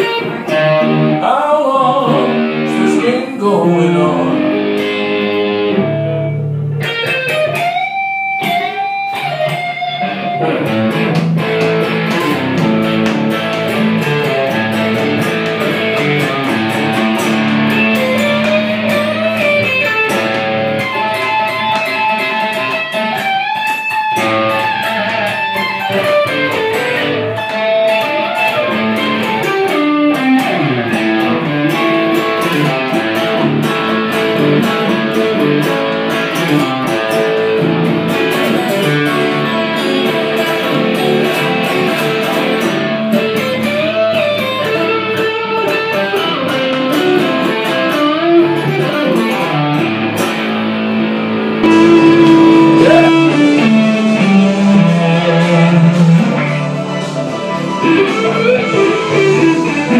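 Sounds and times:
electric guitar lead with bent notes: 0.0 - 59.9
lower held notes: 51.5 - 59.9.

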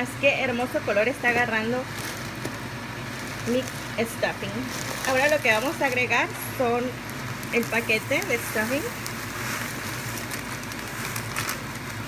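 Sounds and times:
meat and vegetables sizzling: 1.7 - 12.0.

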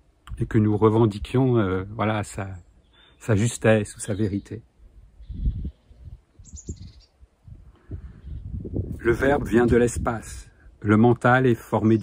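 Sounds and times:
small bird chirping: 2.5 - 4.6, 5.2 - 7.2, 8.1 - 8.7.

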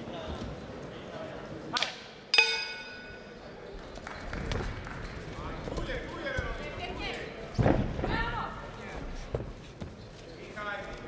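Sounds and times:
ring bell struck: 2.4 - 3.4.

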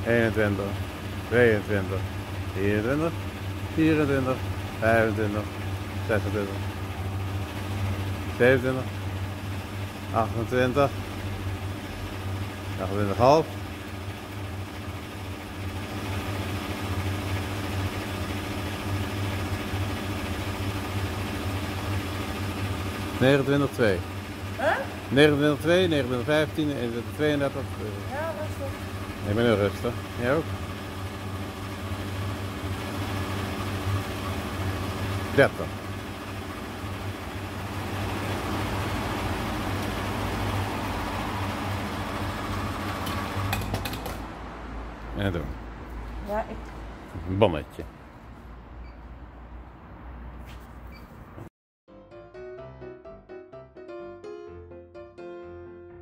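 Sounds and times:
fuel pump humming: 0.0 - 48.2.

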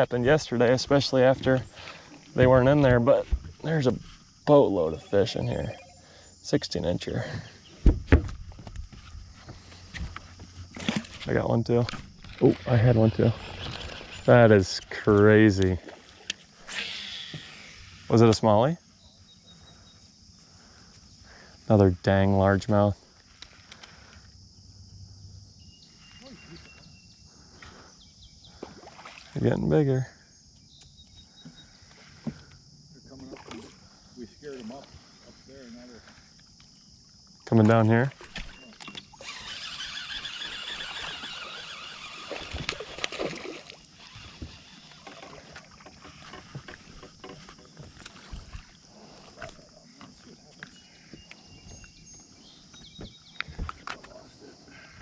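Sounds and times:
high insect buzz: 0.5 - 21.8, 22.5 - 53.7
water noises: 9.4 - 18.8, 28.5 - 30.0, 37.5 - 51.4
fishing reel whirring: 12.2 - 14.8, 16.3 - 18.1, 38.9 - 43.2, 43.9 - 46.8.

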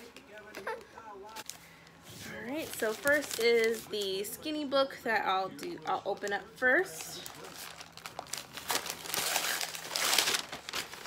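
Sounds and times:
paper wrapping crinkling: 0.6 - 4.2, 6.1 - 11.0.

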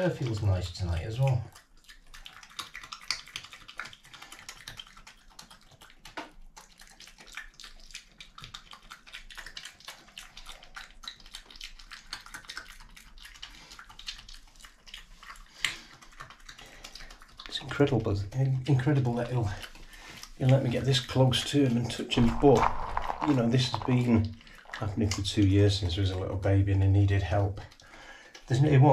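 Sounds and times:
badger chewing food: 0.1 - 28.8.

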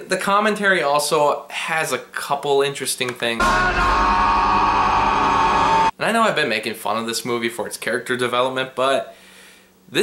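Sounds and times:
man screaming: 3.4 - 5.9.

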